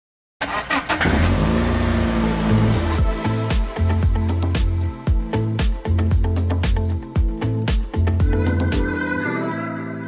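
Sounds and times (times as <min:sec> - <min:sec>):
loud low car engine: 0:00.6 - 0:03.4.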